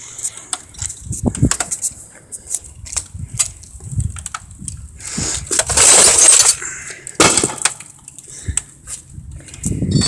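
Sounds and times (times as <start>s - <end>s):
television being smashed: 5.6s - 6.5s, 7.2s - 7.9s.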